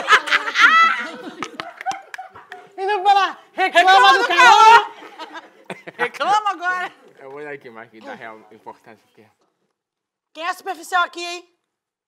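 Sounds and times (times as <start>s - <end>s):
people laughing loudly: 0.0s - 3.0s, 3.6s - 7.0s.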